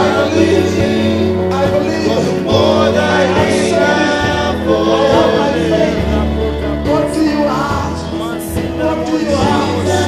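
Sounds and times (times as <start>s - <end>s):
low musical accompaniment: 0.0s - 10.0s
men and women singing worship song: 0.0s - 10.0s.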